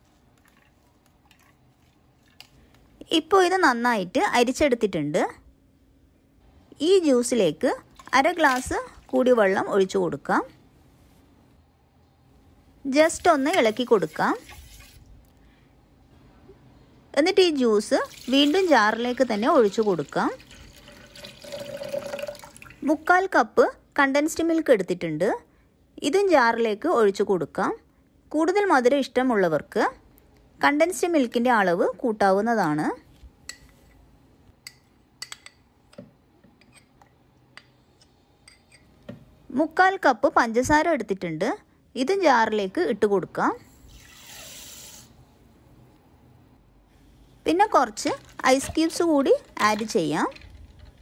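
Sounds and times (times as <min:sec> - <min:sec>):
person speaking: 0:47.4 - 0:50.5
spoon stirring liquid in bowl: 0:47.9 - 0:51.0.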